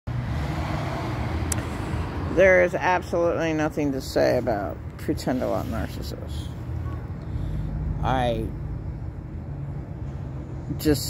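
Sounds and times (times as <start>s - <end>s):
low rumble of road traffic: 0.1s - 11.0s.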